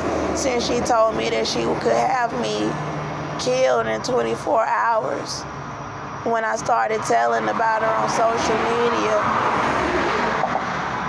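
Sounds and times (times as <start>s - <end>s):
passing traffic: 0.0s - 11.0s.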